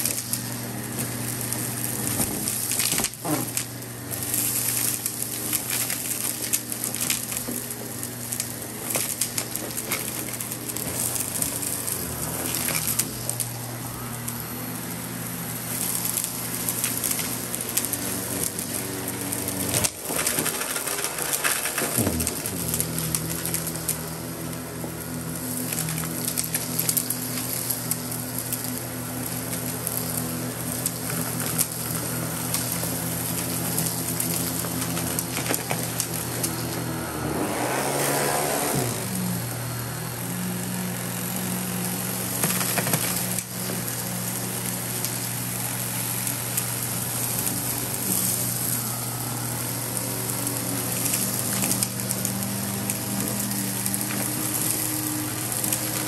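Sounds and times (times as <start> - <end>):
vacuum cleaner running: 0.0 - 56.0
debris clicking and rattling: 15.9 - 24.0, 42.3 - 44.0.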